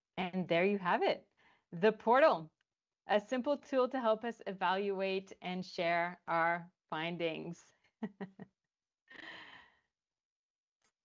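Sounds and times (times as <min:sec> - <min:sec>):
woman laughing: 0:08.0 - 0:08.5.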